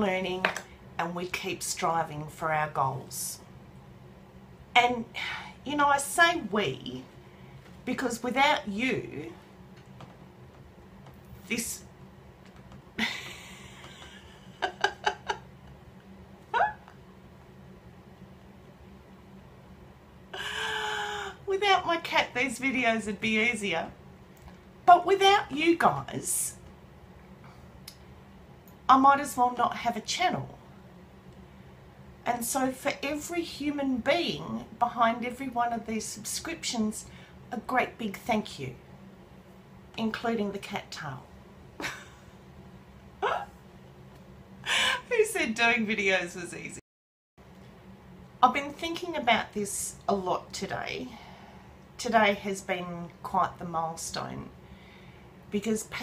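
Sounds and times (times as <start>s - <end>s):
woman laughing: 13.0s - 15.8s, 41.8s - 42.4s, 44.7s - 45.1s.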